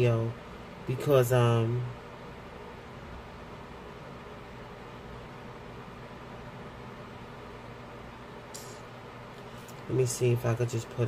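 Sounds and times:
faint low hum: 0.0 - 11.0
room noise hiss: 0.0 - 11.0.

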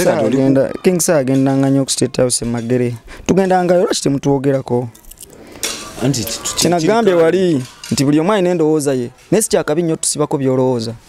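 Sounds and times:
man speaking: 0.0 - 4.9, 6.0 - 11.0
small metal pieces jingling: 4.9 - 6.3.

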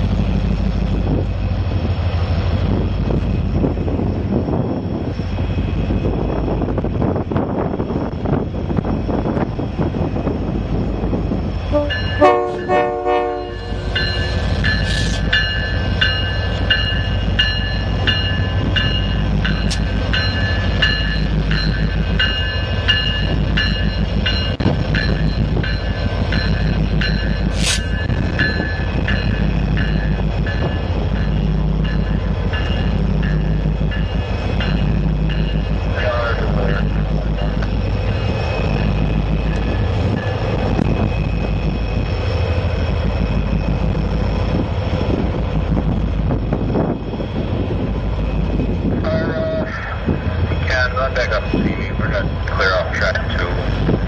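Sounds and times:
diesel locomotive engines rumbling: 0.0 - 54.0
train horn blast: 11.7 - 13.8
locomotive bell ringing: 11.7 - 42.4
sharp hiss: 27.5 - 27.9.

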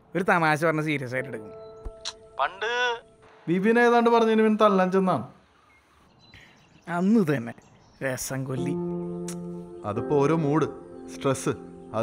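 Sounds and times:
faint high chirp: 1.4 - 2.0, 5.6 - 7.0
man talking: 2.4 - 5.3, 6.9 - 8.8.

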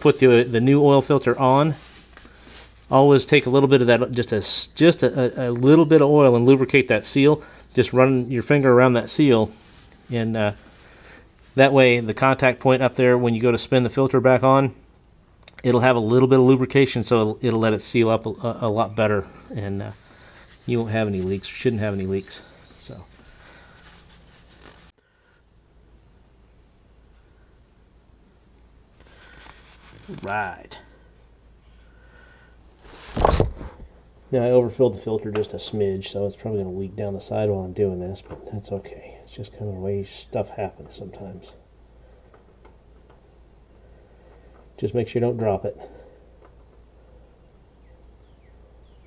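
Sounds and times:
hands wiped on towel: 0.0 - 2.9, 20.2 - 24.9.

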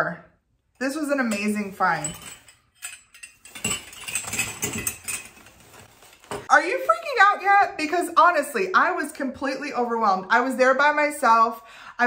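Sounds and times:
metal candlesticks clinking: 1.1 - 6.2.

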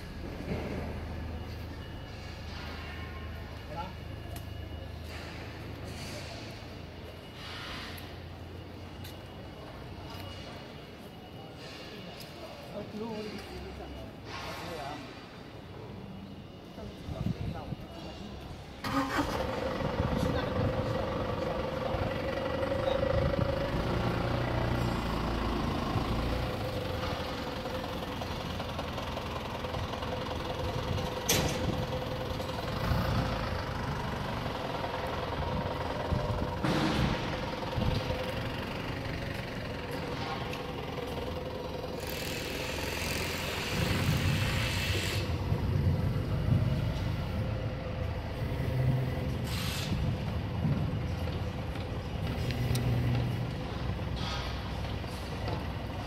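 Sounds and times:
machinery humming: 0.0 - 56.0.

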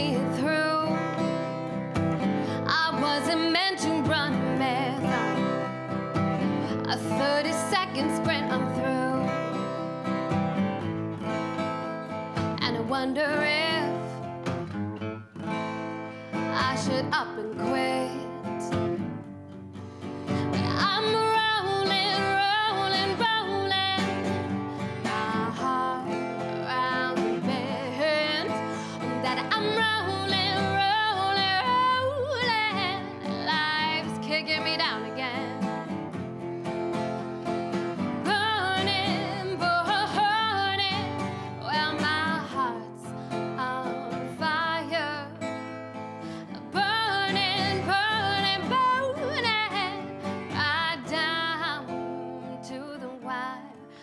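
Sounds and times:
woman singing: 0.0 - 10.2, 11.2 - 14.6, 16.3 - 19.1, 20.2 - 36.2, 37.1 - 54.0
acoustic guitar: 0.0 - 54.0.

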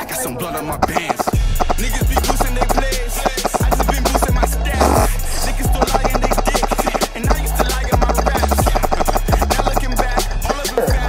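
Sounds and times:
fast ticking beat: 0.0 - 11.0
deep sliding bass: 1.4 - 11.0.

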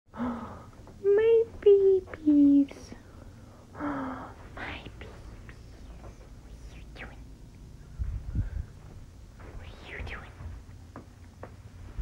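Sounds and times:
breathy whispers: 2.8 - 10.6.

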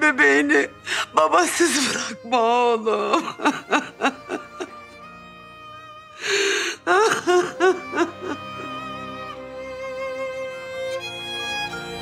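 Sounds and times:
woman sobbing: 0.0 - 5.0, 6.2 - 9.1
slow background music: 0.0 - 12.0.

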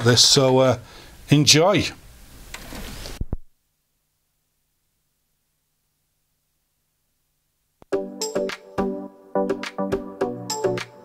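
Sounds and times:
faint rustling: 2.4 - 3.5.

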